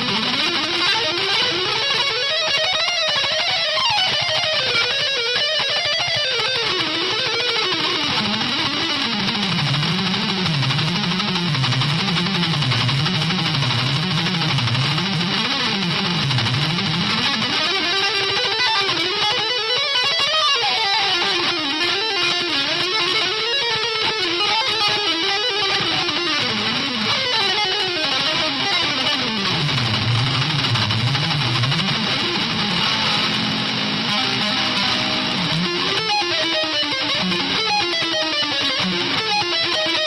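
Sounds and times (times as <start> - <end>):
fast guitar runs: 0.0 - 40.0.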